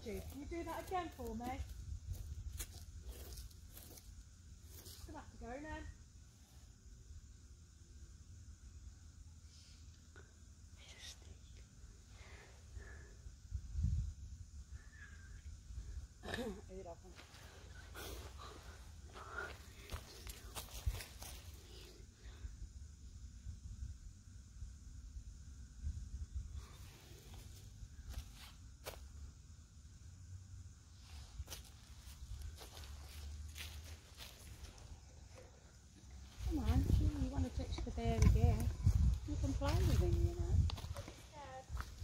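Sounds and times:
wind rumble on microphone: 13.5 - 16.1, 36.4 - 42.0
footsteps on dry leaves: 31.5 - 34.8
voices: 36.3 - 41.8.

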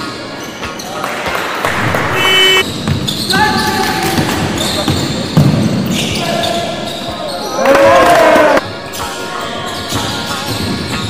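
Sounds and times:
players' voices echoing: 1.5 - 2.6
short high-pitched tones: 1.7 - 2.6.

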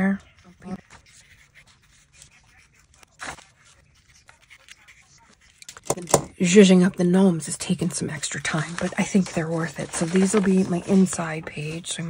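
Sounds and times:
marker scratching on paper: 0.0 - 12.0.

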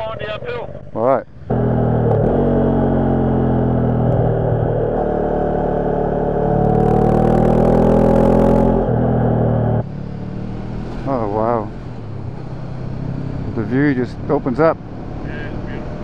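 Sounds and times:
motorcycle engine under throttle: 1.3 - 11.2.

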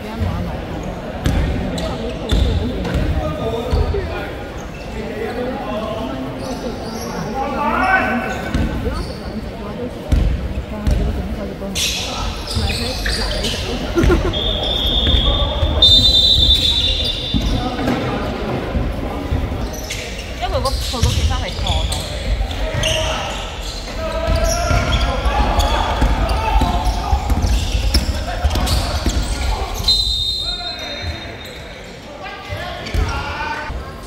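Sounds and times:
shoes squeaking on court: 6.3 - 11.1, 11.7 - 18.6, 19.2 - 31.8
basketball bouncing on court: 10.1 - 11.2, 20.5 - 23.0, 24.3 - 29.4
players calling: 11.7 - 33.8.

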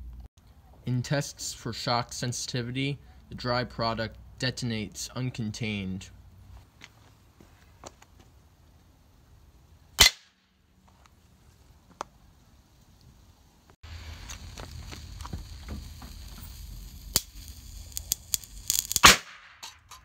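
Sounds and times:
outdoor background noise: 0.0 - 20.0
explosive crack on anvil: 17.1 - 20.0.

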